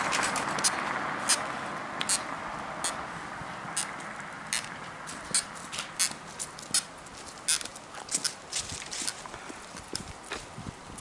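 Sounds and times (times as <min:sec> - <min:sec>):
stilts knocking on asphalt: 0:03.7 - 0:07.8.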